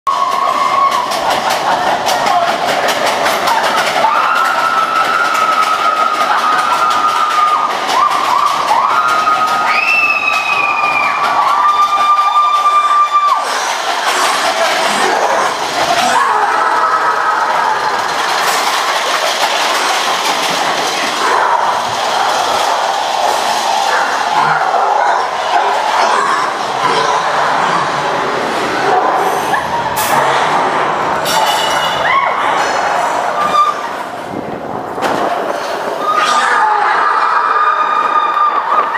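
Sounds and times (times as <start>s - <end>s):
ride car rattling on steel track: 0.1s - 38.9s.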